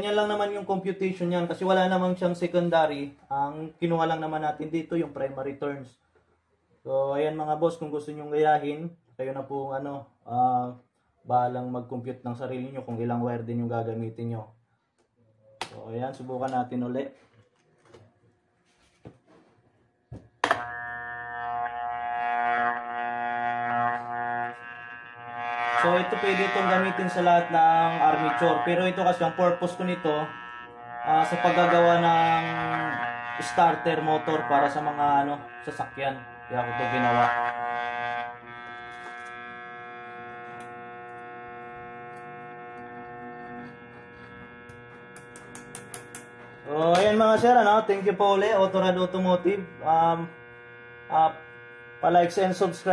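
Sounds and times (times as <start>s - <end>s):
electrical hum: 15.4s - 52.9s.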